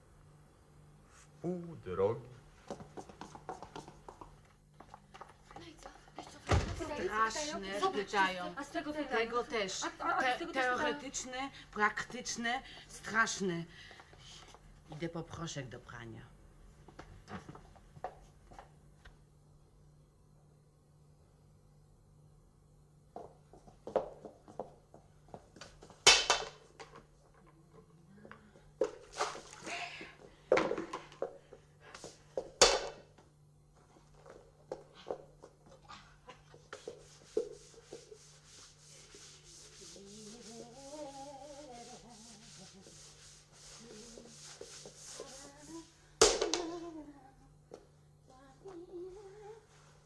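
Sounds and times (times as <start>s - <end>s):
broom and bucket clattering: 28.9s - 29.7s
hissing scrubbing on floor: 36.3s - 46.0s
woman humming: 39.9s - 42.8s, 45.2s - 47.6s, 48.3s - 49.7s.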